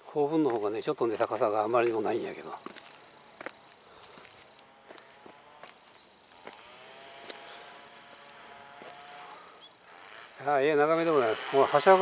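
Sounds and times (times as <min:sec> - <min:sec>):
footsteps on grass: 0:00.2 - 0:09.5.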